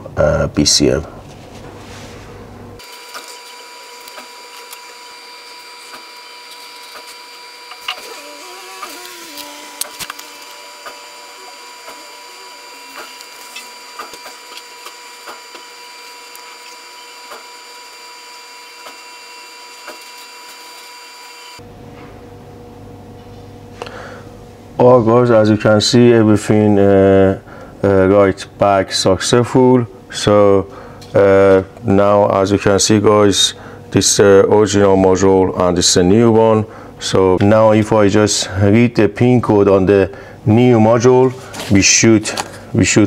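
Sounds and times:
electrical whine: 2.4 - 23.3.

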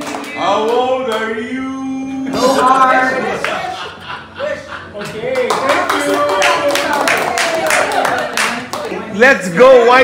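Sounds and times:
people clapping: 0.0 - 1.3, 3.4 - 3.7, 5.0 - 10.0.

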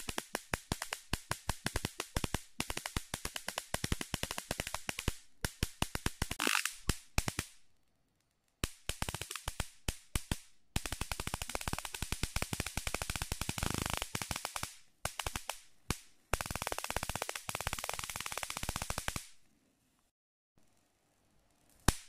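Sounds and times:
high-voltage sparks crackling: 0.0 - 7.6, 8.6 - 19.4, 21.7 - 22.0.

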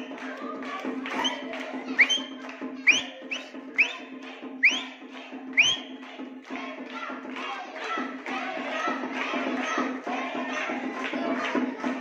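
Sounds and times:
crowd noise: 0.0 - 12.0
short rising whistles: 2.0 - 4.0, 4.6 - 4.9, 5.6 - 6.0.

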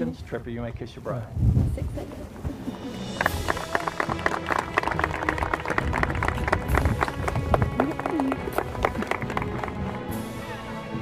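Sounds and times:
people cheering: 3.0 - 9.8
crowd clapping: 3.0 - 10.2.

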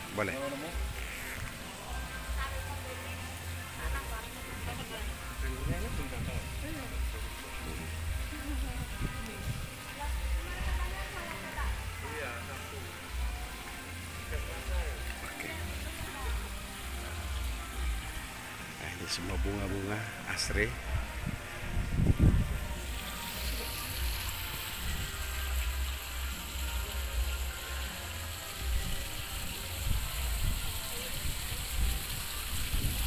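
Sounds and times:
background music: 0.0 - 33.0
faint voices: 0.0 - 33.0
fountain splashing: 0.0 - 33.0.

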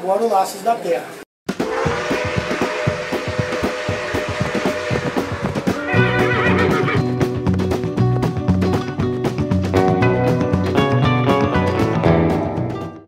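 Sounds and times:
fast hoofbeats: 1.6 - 11.5
horse whinnying: 5.7 - 7.1.

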